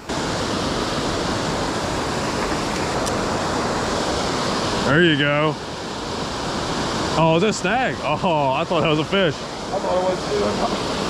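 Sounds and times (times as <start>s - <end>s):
water rushing over dam spillway: 0.0s - 11.0s.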